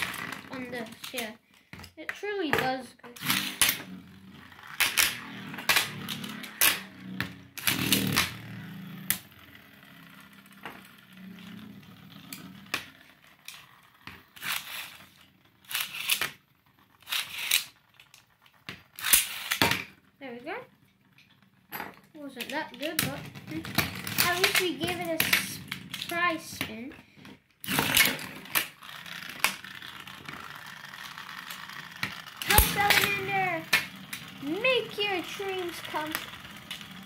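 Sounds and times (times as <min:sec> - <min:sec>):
spinning tops whirring: 0:00.0 - 0:26.9, 0:27.6 - 0:37.0.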